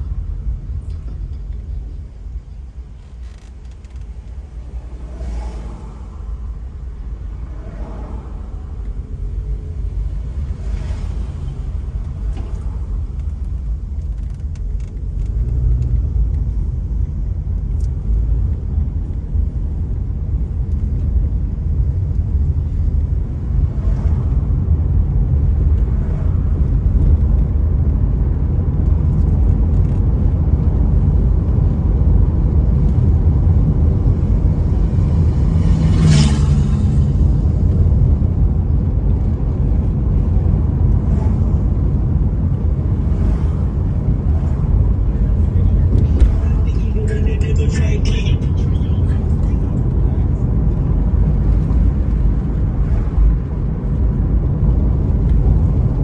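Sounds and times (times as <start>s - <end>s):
car driving on road: 0.0s - 56.0s.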